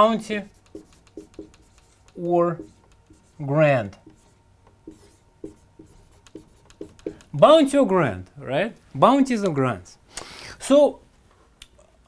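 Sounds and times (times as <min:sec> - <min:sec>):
marker squeaking on whiteboard: 0:00.3 - 0:07.4.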